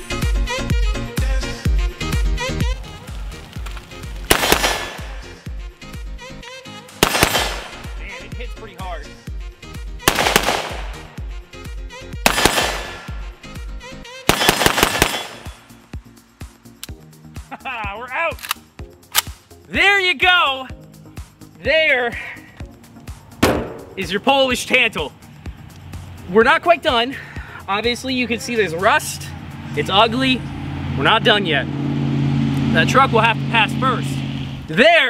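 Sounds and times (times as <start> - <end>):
background music with bass beat: 0.0 - 14.3, 15.4 - 30.4
rifle shots echoing: 4.3 - 5.3, 7.0 - 8.0, 10.1 - 11.2, 12.2 - 13.3, 14.3 - 15.7, 23.4 - 24.1.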